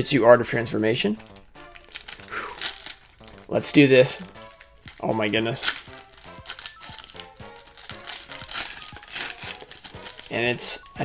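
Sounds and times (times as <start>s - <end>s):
faint background music: 0.0s - 11.0s
plastic wrapper crinkling: 1.2s - 11.0s.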